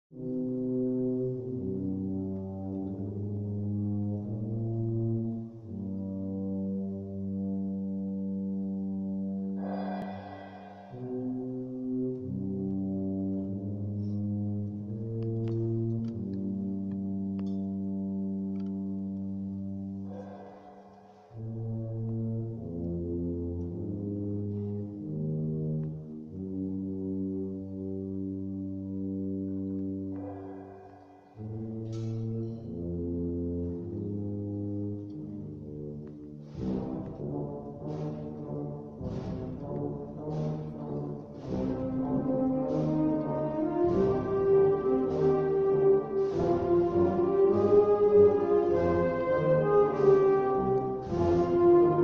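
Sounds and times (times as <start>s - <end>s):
brass section playing low chords: 0.1s - 52.0s.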